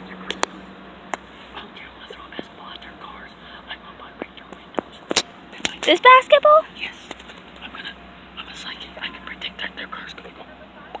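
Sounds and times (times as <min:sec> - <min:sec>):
quiet whispered speech: 0:01.6 - 0:05.0, 0:06.8 - 0:11.0.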